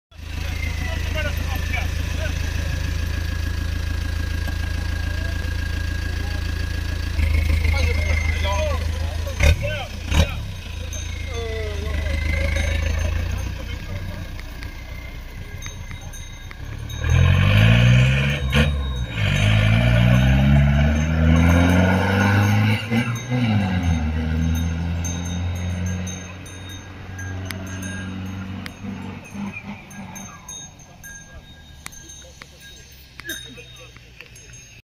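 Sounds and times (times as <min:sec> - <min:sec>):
car engine idling and revving: 0:00.1 - 0:34.8.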